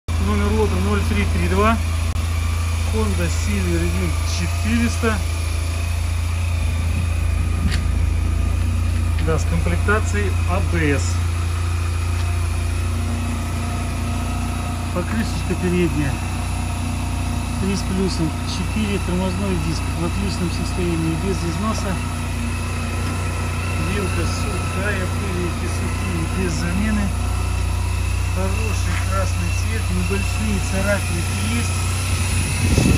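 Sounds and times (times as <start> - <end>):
scooter engine idling: 0.1 - 32.9.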